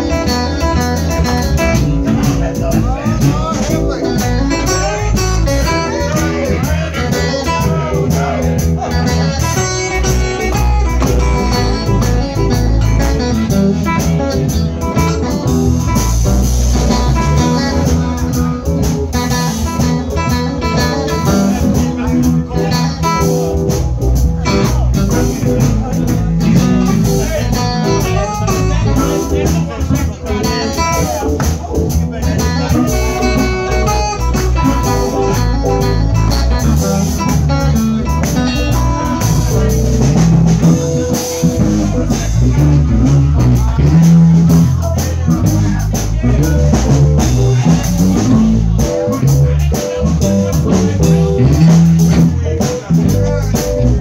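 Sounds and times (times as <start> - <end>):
live blues band playing: 0.0 - 54.0.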